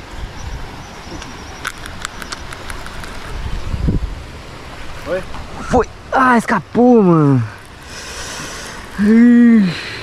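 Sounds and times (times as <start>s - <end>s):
wind rumbling on microphone: 0.0s - 6.2s.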